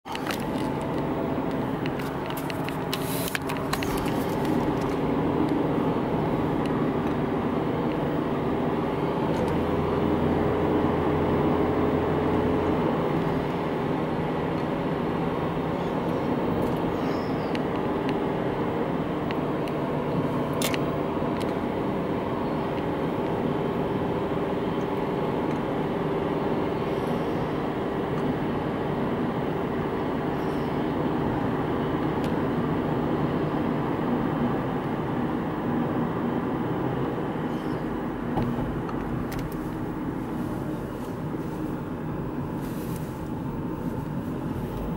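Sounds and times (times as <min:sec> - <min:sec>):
car driving on asphalt: 0:00.0 - 0:44.9.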